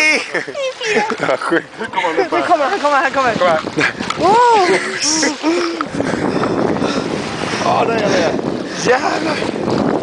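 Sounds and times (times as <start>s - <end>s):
water streaming past hull: 0.0s - 10.0s
wind buffeting microphone: 0.8s - 10.0s.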